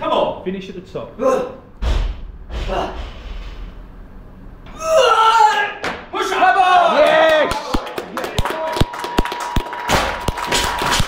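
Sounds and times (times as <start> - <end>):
person shouting: 4.7 - 7.6
people clapping: 6.9 - 11.0.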